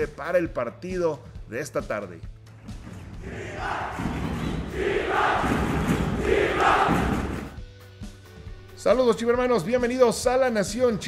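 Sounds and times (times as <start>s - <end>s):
steady background music: 0.0s - 11.0s
crowd chanting and cheering: 3.1s - 7.6s.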